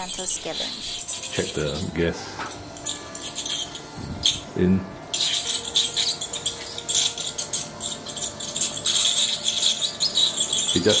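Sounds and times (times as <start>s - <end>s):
dental scaler scraping teeth: 0.0s - 11.0s.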